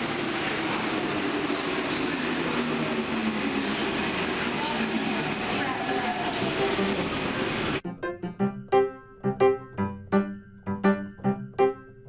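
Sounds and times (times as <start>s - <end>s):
people talking on platform: 0.0s - 7.8s
train rumble and hiss: 0.0s - 7.8s.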